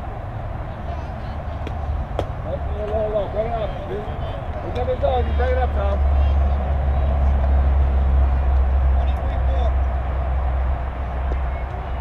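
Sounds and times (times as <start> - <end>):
low outdoor rumble: 0.0 - 12.0
faint voices: 0.5 - 12.0.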